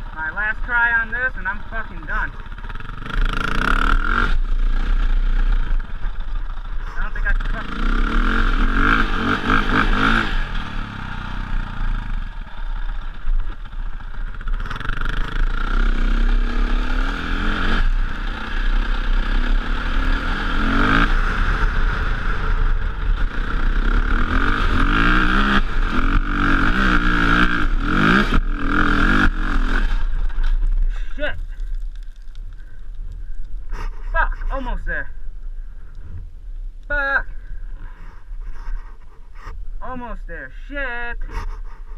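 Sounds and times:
dirt bike engine revving: 0:00.0 - 0:31.3.

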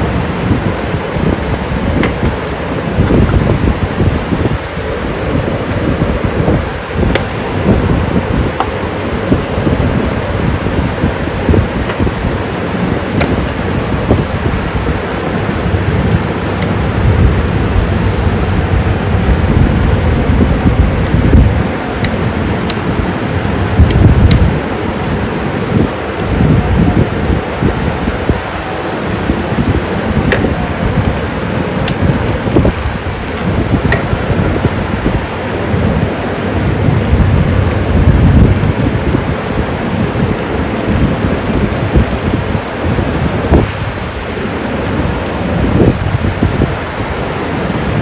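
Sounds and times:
fan airflow buffeting microphone: 0:00.0 - 0:48.0.

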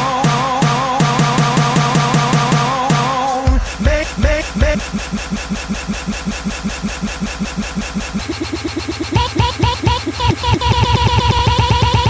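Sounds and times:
looped electronic music stuttering: 0:00.0 - 0:12.0.

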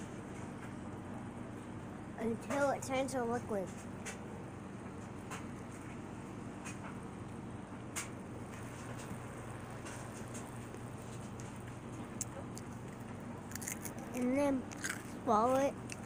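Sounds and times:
low room hum: 0:00.0 - 0:16.0
ice crunching while chewed: 0:09.8 - 0:16.0.

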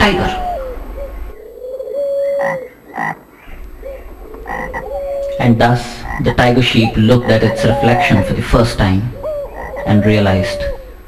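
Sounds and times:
frogs croaking: 0:00.0 - 0:11.0.

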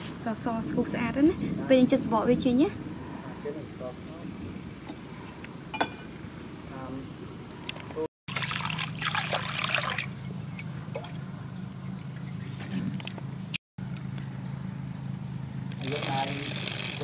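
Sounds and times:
water pouring: 0:08.3 - 0:10.2, 0:15.8 - 0:17.0.

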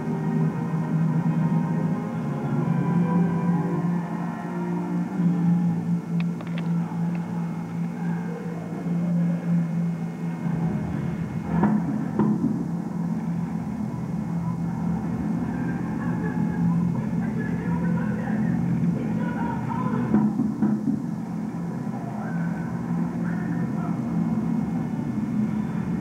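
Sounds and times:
low droning tone: 0:00.0 - 0:26.0
deep rumble: 0:04.9 - 0:26.0.

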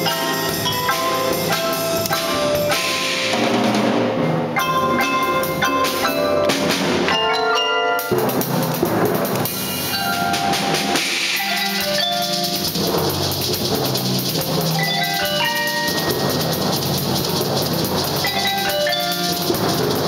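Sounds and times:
drum hits: 0:00.0 - 0:07.3, 0:08.0 - 0:20.0
marimba melody: 0:00.0 - 0:20.0.

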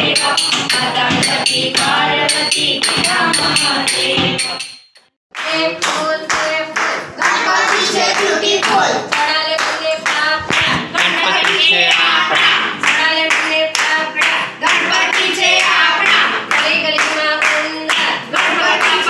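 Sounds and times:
group singing devotional song: 0:00.0 - 0:04.7, 0:05.4 - 0:19.0
rhythmic hand-clapping: 0:00.0 - 0:19.0.

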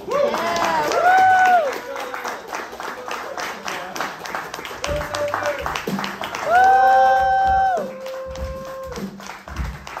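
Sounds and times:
hand claps: 0:00.4 - 0:10.0.

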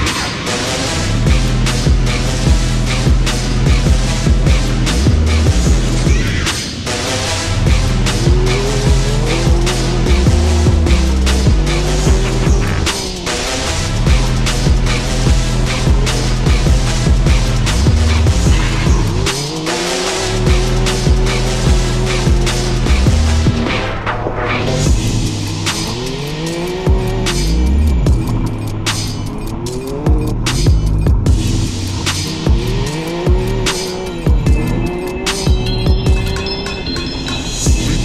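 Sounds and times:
off-road vehicle engine revving: 0:00.0 - 0:37.0
trap music with heavy bass: 0:00.0 - 0:38.0.

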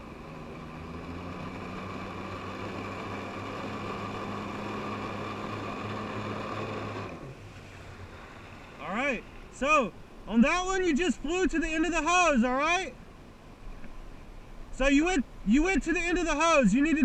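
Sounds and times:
jet ski engine whining: 0:00.0 - 0:13.0, 0:14.8 - 0:17.0.

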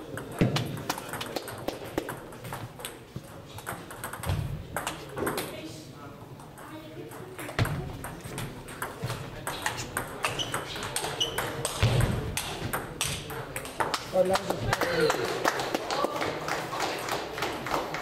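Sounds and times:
echoing ball clicks: 0:00.1 - 0:03.0, 0:06.4 - 0:14.4
table tennis ball clicking off paddles: 0:00.1 - 0:03.0
ball bouncing on table: 0:00.2 - 0:03.0, 0:03.6 - 0:05.5, 0:06.4 - 0:14.0.

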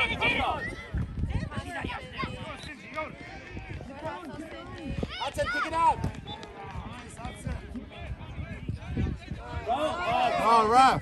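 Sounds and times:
voices shouting: 0:00.0 - 0:07.2, 0:07.8 - 0:11.0.

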